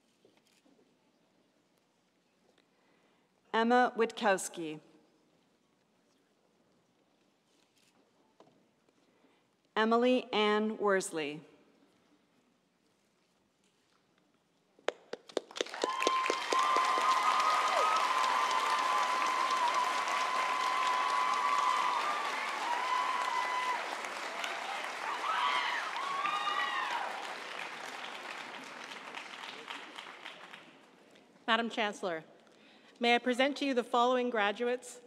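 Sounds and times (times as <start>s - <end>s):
audience applause: 15.3s - 30.9s
whoops and cheering voices: 15.6s - 27.7s.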